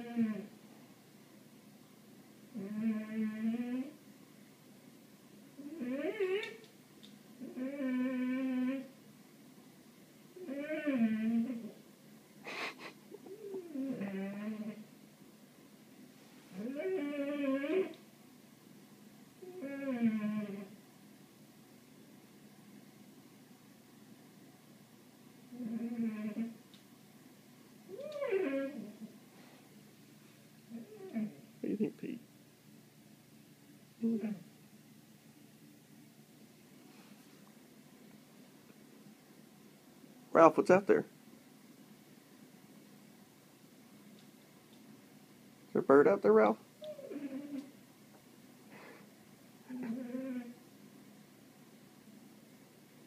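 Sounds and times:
dog whining: 0.0 - 0.5, 2.6 - 4.0, 5.6 - 6.6, 7.4 - 9.0, 10.4 - 11.8, 13.2 - 14.8, 16.5 - 18.0, 19.4 - 20.8, 25.5 - 26.6, 27.9 - 29.1, 30.7 - 31.5, 34.0 - 34.5, 46.8 - 47.8, 49.7 - 50.6.

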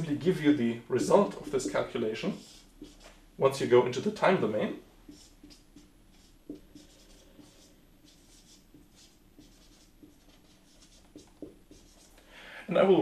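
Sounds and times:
marker writing on whiteboard: 0.0 - 12.2.

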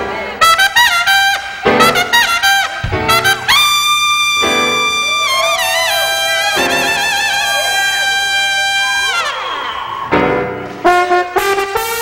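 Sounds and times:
brass holding high note: 0.6 - 9.6.

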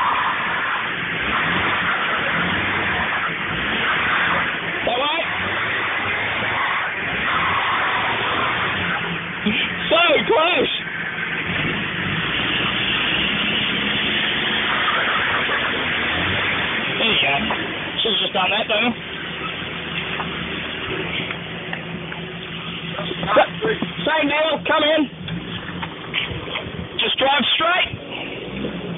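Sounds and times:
car engine running at low revs: 0.0 - 28.9.

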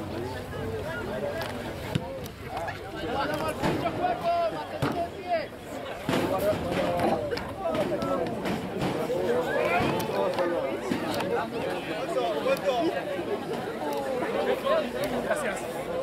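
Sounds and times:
voices shouting and calling: 0.0 - 16.0.

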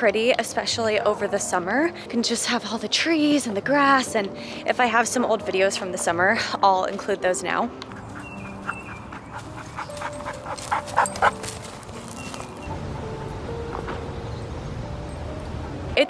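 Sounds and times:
soft background music: 0.0 - 16.0
dog panting: 7.9 - 12.5.

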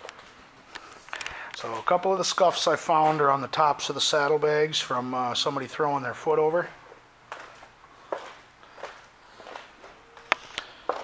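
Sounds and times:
footsteps on hard floor: 7.3 - 11.0.

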